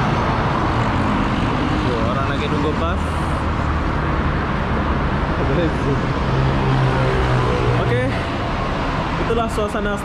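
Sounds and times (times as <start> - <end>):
highway traffic rumble: 0.0 - 10.0.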